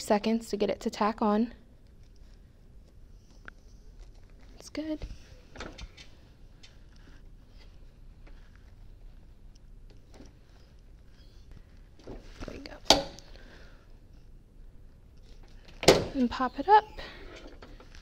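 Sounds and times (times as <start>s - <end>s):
faint handling sounds: 1.7s - 18.0s.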